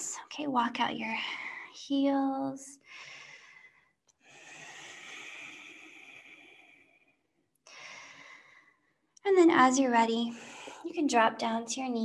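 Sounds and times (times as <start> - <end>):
woman breathing deeply: 2.8 - 9.0, 10.3 - 10.9.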